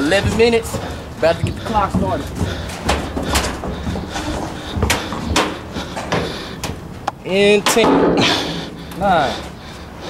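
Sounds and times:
footsteps on metal walkway: 0.0s - 10.0s.

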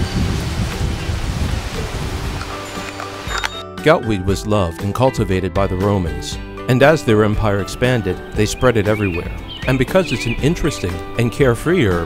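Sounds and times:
wind buffeting microphone: 0.0s - 3.3s
leaves and undergrowth rustling: 0.0s - 3.6s.

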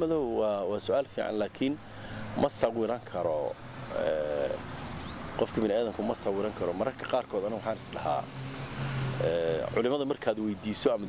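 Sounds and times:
man speaking: 0.0s - 4.7s, 5.4s - 8.3s, 9.2s - 11.0s.

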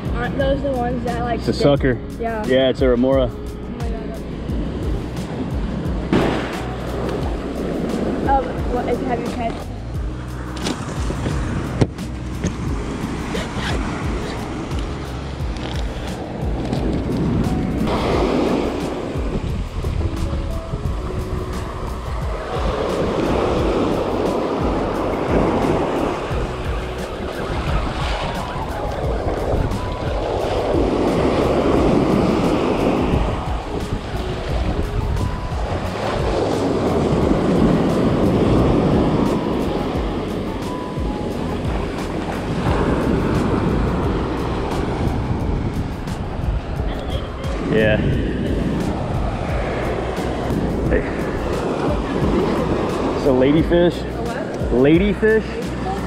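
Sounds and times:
ocean surf washing onto beach: 0.0s - 56.0s
wind rumbling on microphone: 0.0s - 56.0s.

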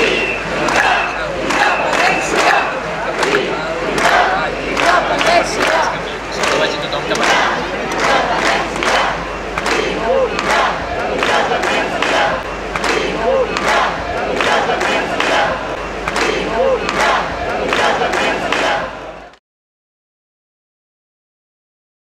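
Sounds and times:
crowd chanting and shouting: 0.0s - 19.4s.

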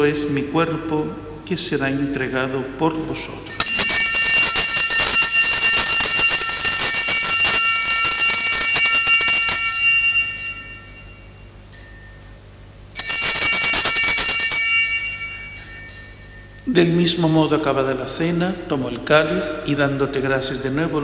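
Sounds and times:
altar bells jingling: 3.5s - 17.6s.

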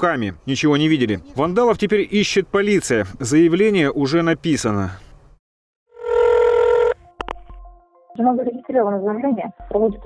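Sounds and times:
telephone line beep: 6.0s - 7.0s.

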